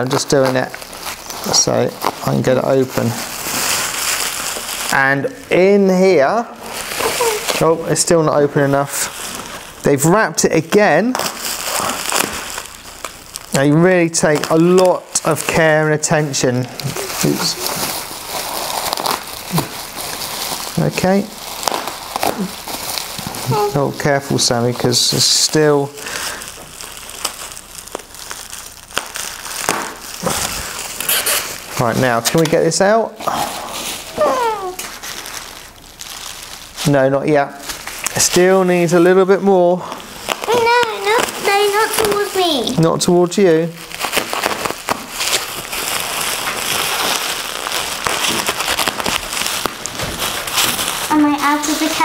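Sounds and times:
plastic wrap crinkling: 0:00.0 - 0:52.0.

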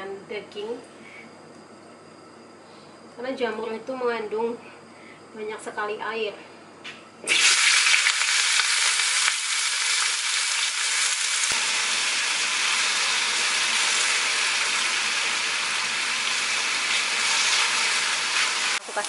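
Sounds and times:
mushrooms sizzling in a wok: 0:07.3 - 0:19.0.

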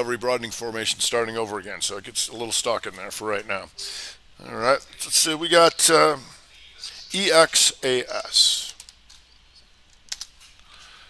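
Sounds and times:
computer keyboard typing: 0:10.0 - 0:10.3.

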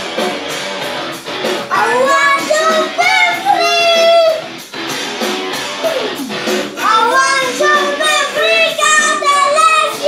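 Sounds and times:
rock music: 0:00.0 - 0:10.0
boy singing into microphone: 0:01.7 - 0:04.5, 0:06.8 - 0:10.0.

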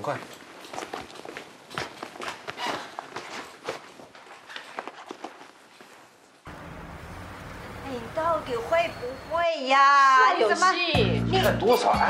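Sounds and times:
faint footsteps: 0:00.0 - 0:06.6.

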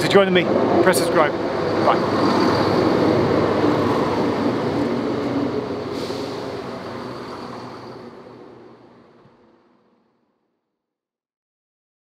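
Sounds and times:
train rumble with high whine: 0:00.0 - 0:10.2.

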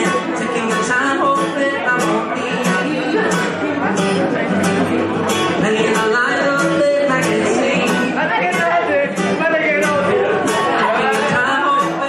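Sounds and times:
man singing: 0:00.0 - 0:12.0
strummed acoustic guitar: 0:00.0 - 0:12.0.

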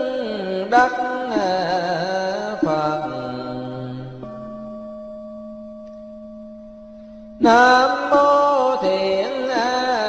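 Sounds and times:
person chanting: 0:00.0 - 0:04.5, 0:07.4 - 0:10.0.

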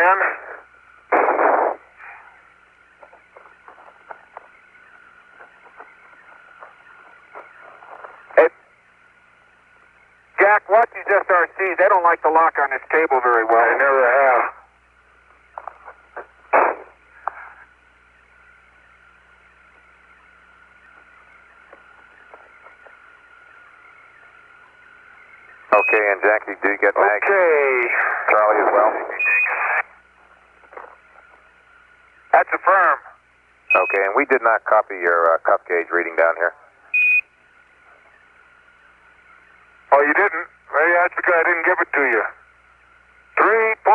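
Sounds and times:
radio link hiss: 0:00.0 - 0:43.9
loud burst of noise: 0:00.5 - 0:02.4
faint steady tone: 0:01.8 - 0:43.9
short steady beep: 0:33.7 - 0:34.0, 0:36.9 - 0:37.3.

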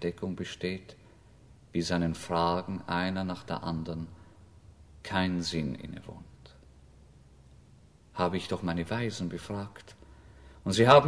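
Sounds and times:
man speaking: 0:00.0 - 0:01.0, 0:01.7 - 0:04.2, 0:05.0 - 0:06.6, 0:08.1 - 0:10.0, 0:10.6 - 0:11.0
faint low hum and hiss: 0:00.0 - 0:11.0.

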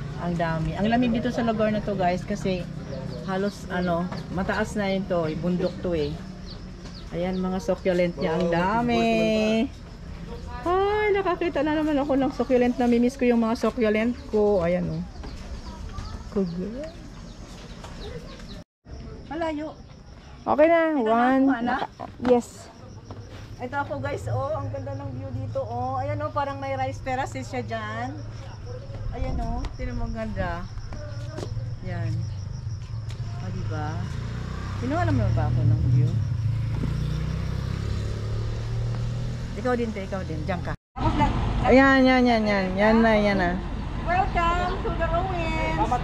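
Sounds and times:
low rumble: 0:24.3 - 0:34.1.

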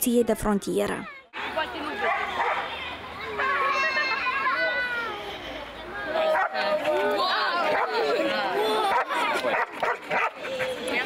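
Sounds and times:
children chattering: 0:00.0 - 0:11.0
dog barking and yelping: 0:08.9 - 0:10.7.

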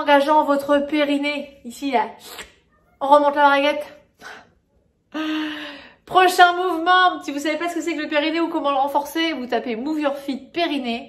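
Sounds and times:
woman breathing out sighing: 0:05.1 - 0:06.0.

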